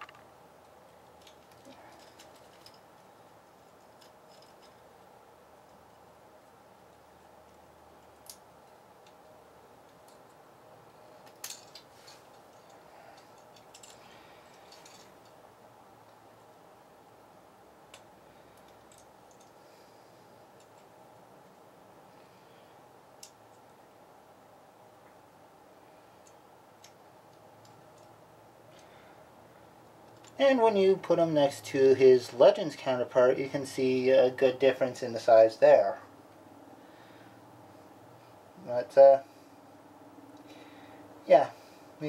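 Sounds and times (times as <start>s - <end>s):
faint room hum: 0.0s - 42.0s.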